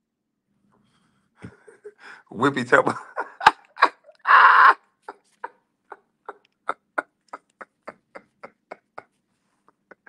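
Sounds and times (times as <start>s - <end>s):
man laughing: 1.4s - 10.0s.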